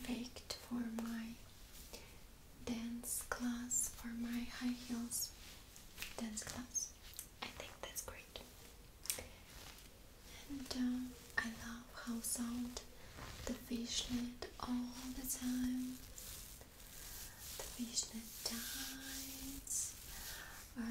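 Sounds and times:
soft whispering: 0.0s - 20.9s
fingernails scratching on mesh fabric: 12.8s - 20.7s.

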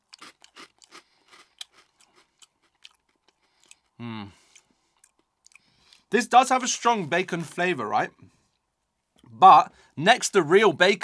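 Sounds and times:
chewing crunchy crisps: 0.0s - 6.1s.

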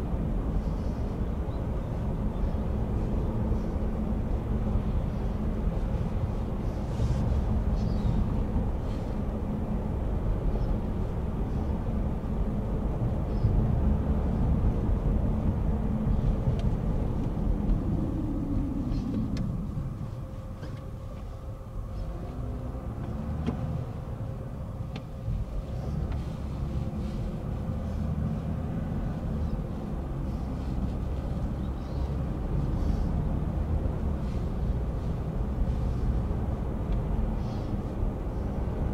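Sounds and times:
car cabin road rumble: 0.0s - 38.9s.

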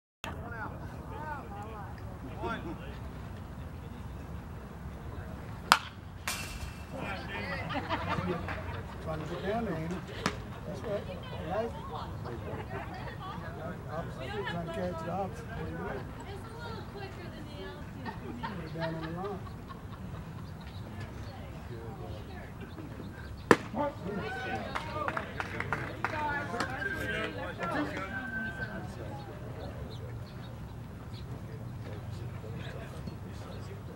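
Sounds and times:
voices calling out: 0.3s - 33.9s
bat hitting ball crack: 5.6s - 7.0s, 23.5s - 23.8s
baseball popping into mitt: 5.7s - 6.8s, 23.5s - 23.8s.

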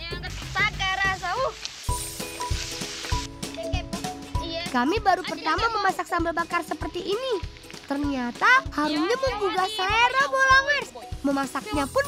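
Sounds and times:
background music with steady beat: 0.0s - 12.0s
chili sizzling in oil: 0.1s - 12.0s.

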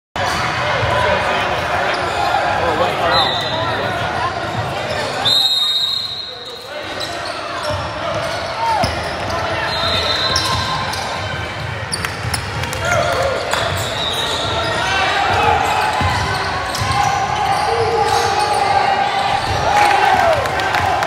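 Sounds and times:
crowd chatter: 0.2s - 21.0s
referee's whistle: 3.0s - 3.7s, 5.1s - 7.4s, 8.3s - 11.0s, 13.7s - 14.8s
basketball bouncing on court: 15.3s - 17.5s.

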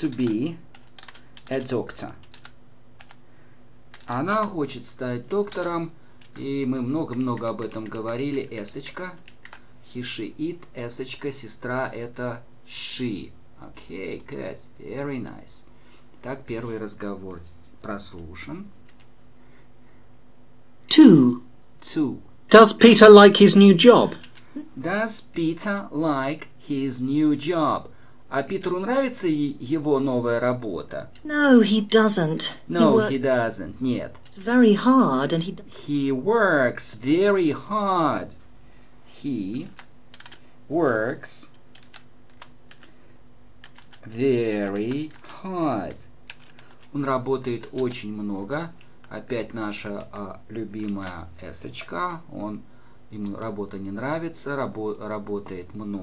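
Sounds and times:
computer keyboard keystrokes: 0.0s - 3.2s, 3.9s - 4.2s, 5.3s - 6.4s, 7.0s - 9.6s, 39.7s - 40.4s, 41.7s - 42.9s, 43.6s - 44.1s, 44.7s - 45.3s, 46.3s - 48.0s, 50.8s - 51.2s, 53.2s - 54.0s
man's voice: 22.5s - 24.2s, 32.2s - 34.0s.

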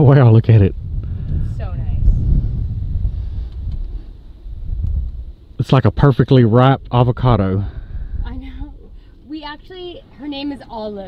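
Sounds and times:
wind buffeting microphone: 0.0s - 6.1s, 6.7s - 10.7s.

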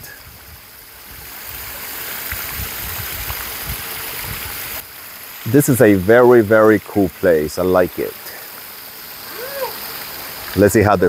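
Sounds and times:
running water rushing: 0.0s - 11.0s.

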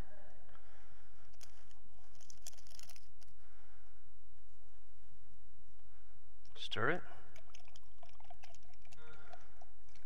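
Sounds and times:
liquid stirring: 7.4s - 9.6s.

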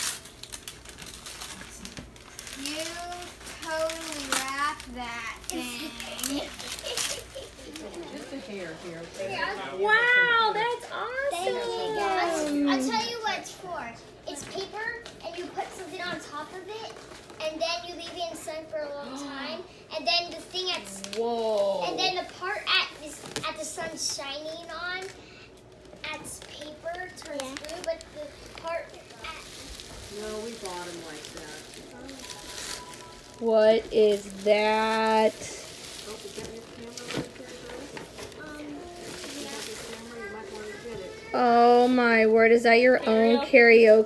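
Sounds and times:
tissue paper rustling: 0.0s - 9.6s, 26.4s - 42.0s
plastic gift bag crinkling: 0.0s - 10.1s, 20.4s - 44.0s
children exclaiming and chattering: 1.9s - 8.4s, 9.0s - 30.3s, 34.5s - 44.0s.

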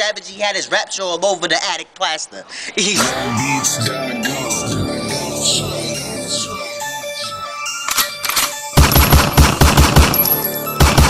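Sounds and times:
loud rap beat: 2.9s - 6.6s.

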